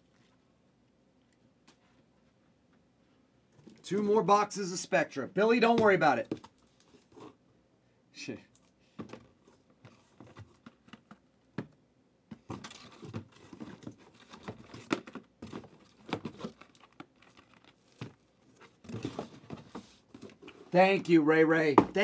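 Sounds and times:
cardboard boxes being handled: 9.0 - 11.2, 12.3 - 21.1.

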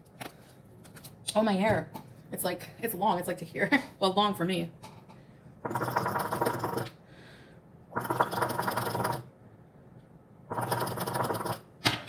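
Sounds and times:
hookah water bubbling: 5.7 - 7.0, 7.9 - 9.3.

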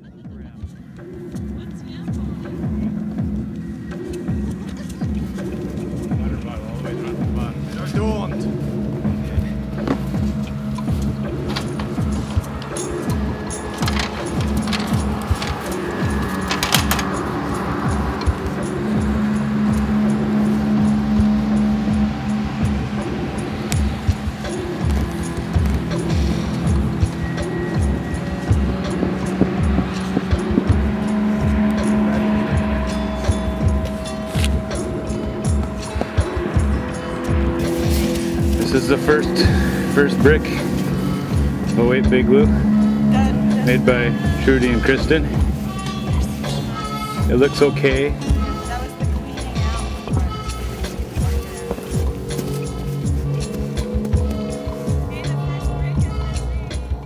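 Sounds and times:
sustained droning tones: 0.0 - 57.0
repeating low pulse: 9.0 - 47.5.

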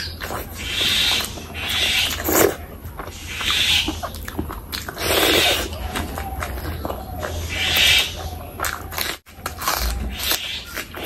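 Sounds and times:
wet chewing and smacking: 0.0 - 11.0.

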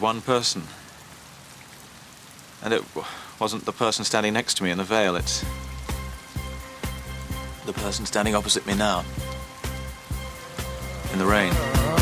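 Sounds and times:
man talking: 0.0 - 0.8, 2.6 - 5.6, 7.6 - 9.1, 11.0 - 12.0
steady rain falling: 0.0 - 12.0.

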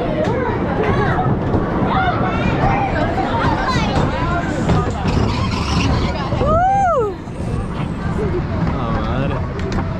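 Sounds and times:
roller coaster rumbling on track: 0.0 - 9.9.

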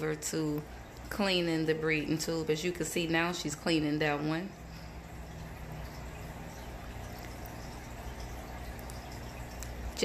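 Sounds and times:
aquarium water noise: 0.0 - 10.0
faint low hum: 0.0 - 10.0.

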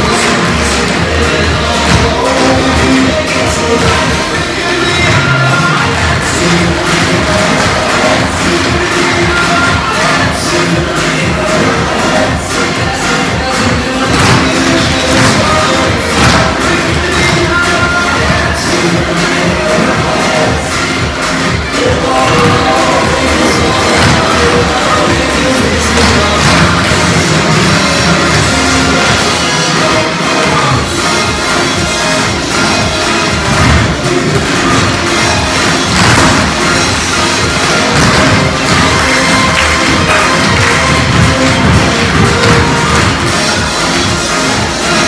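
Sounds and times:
loud recorded music: 0.0 - 45.0.

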